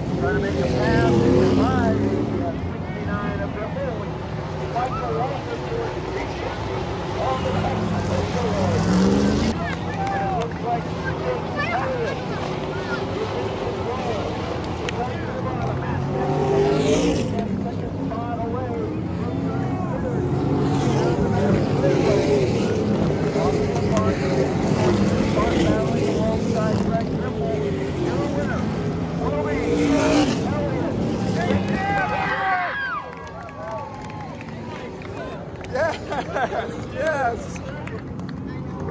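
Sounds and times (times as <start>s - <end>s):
stock car engines at high revs: 0.0s - 32.2s
cars sweeping loudly past: 0.0s - 33.0s.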